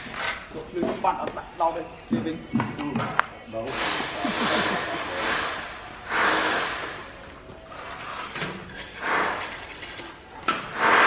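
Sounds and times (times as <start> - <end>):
trowel scraping mortar: 3.7 - 6.7.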